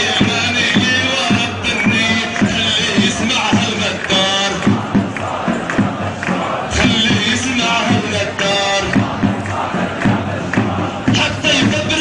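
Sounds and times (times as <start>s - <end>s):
crowd chanting and shouting: 0.0s - 12.0s.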